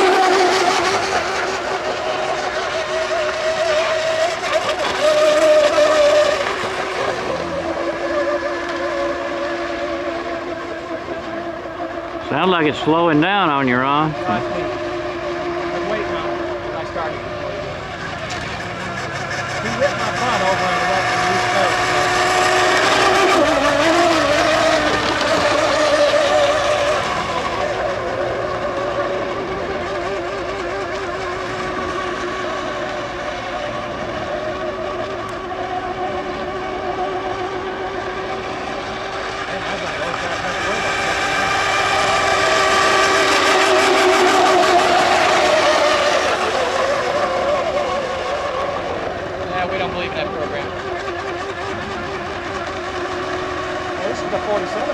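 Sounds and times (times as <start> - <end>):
electric motor whine: 0.0 - 54.9.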